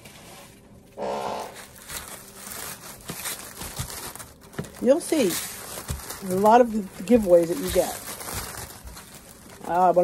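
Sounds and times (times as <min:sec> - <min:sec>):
packing paper rustling and crinkling: 0:01.5 - 0:10.0.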